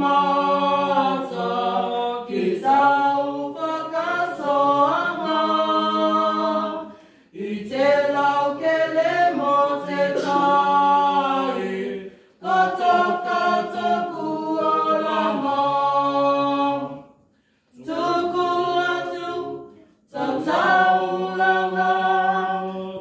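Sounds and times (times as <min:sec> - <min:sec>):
group singing unaccompanied: 0:00.0 - 0:23.0.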